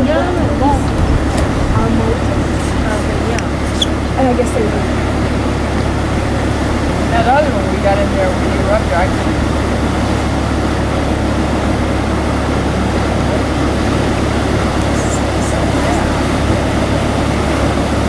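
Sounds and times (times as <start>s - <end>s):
person speaking: 0.0s - 5.1s, 12.5s - 16.8s
boat engine idling: 0.0s - 18.0s
water rushing through sluices: 0.0s - 18.0s.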